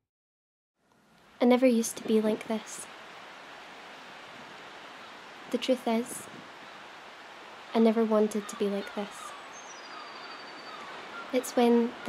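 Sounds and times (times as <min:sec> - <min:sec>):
outdoor ambience noise: 0:00.8 - 0:12.0.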